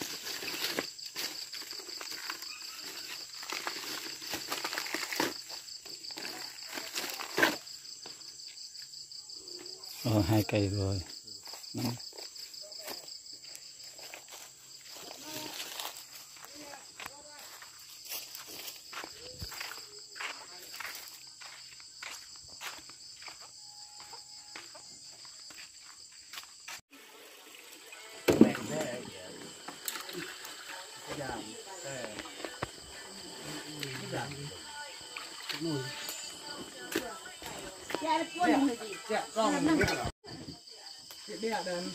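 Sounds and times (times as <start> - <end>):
crickets trilling: 0.0 - 41.9
footsteps: 11.4 - 26.8, 29.7 - 38.8
people's voices: 27.9 - 41.9.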